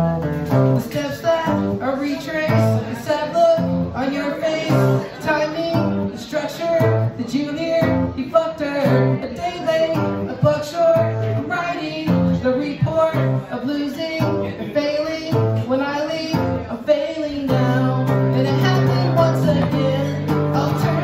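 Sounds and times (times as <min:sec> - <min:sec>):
electric guitar strumming: 0:00.0 - 0:21.0
man singing: 0:00.0 - 0:21.0.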